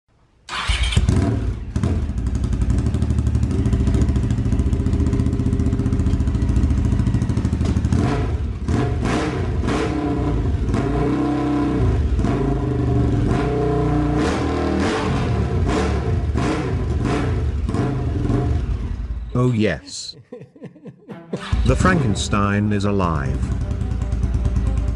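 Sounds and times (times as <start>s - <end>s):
motorcycle engine revving: 0.5s - 19.3s, 23.3s - 24.9s.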